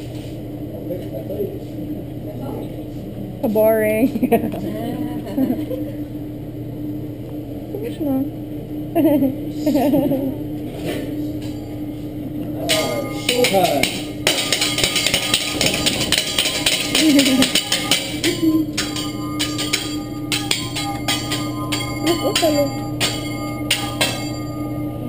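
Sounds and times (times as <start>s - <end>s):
steady hum: 0.0s - 25.0s
metal spatulas clacking on griddle: 12.7s - 21.9s.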